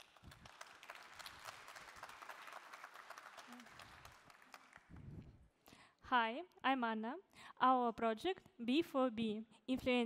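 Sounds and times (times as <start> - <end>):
faint audience applause: 0.0 - 5.0.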